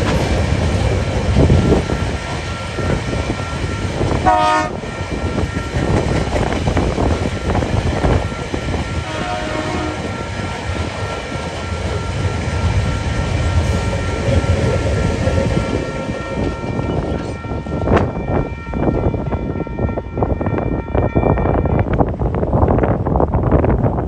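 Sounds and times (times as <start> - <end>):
freight train rumbling past: 0.0 - 24.0.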